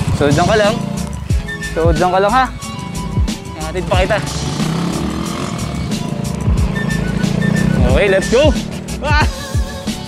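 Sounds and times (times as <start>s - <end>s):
deep downward-sliding bass: 0.0s - 9.3s
motorcycle engine running: 0.0s - 9.8s
background music: 0.0s - 10.0s.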